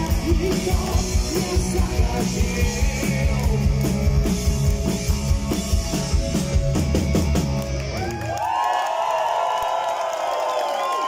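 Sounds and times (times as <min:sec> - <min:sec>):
live rock band playing: 0:00.0 - 0:08.2.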